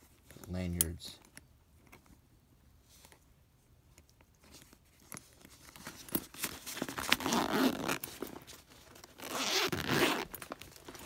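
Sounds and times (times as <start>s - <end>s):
zipper pull clicks: 7.0s - 8.1s, 9.1s - 10.5s
zipper unzipping: 7.1s - 8.1s, 9.2s - 10.4s.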